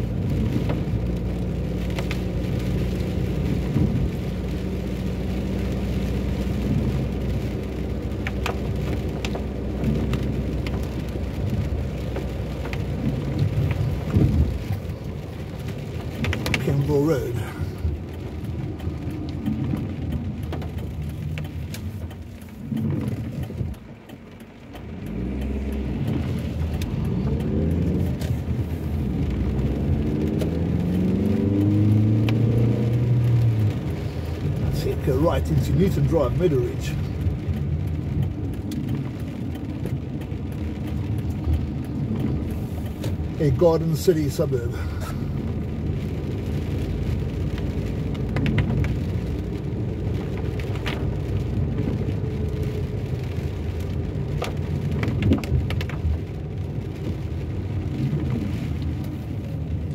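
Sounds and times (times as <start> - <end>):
car engine running: 0.0 - 59.9
rain tapping on windscreen: 0.0 - 59.9
tyres hissing on wet road: 0.0 - 59.9.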